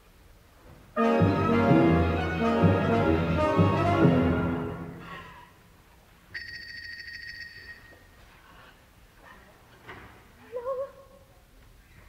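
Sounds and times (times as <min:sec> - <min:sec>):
orchestra: 0:00.9 - 0:05.4.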